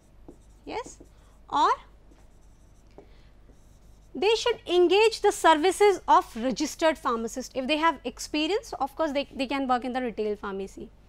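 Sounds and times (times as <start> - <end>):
stylus scratching on touchscreen: 0.0 - 5.6.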